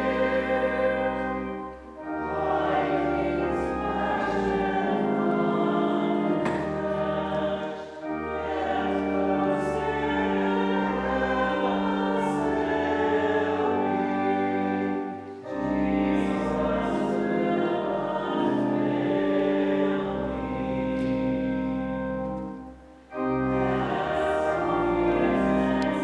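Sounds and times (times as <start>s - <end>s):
congregation singing a hymn: 0.0s - 26.0s
organ accompaniment: 0.0s - 26.0s.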